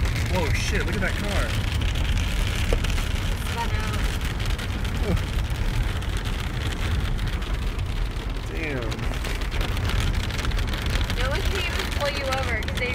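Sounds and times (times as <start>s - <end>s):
car rumbling: 0.0s - 12.9s
rain: 0.0s - 12.9s
tyres on wet road: 0.0s - 12.9s.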